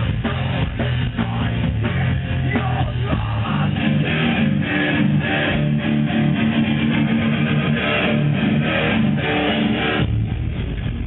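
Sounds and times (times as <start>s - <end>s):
electric guitar playing chords: 0.0s - 11.0s.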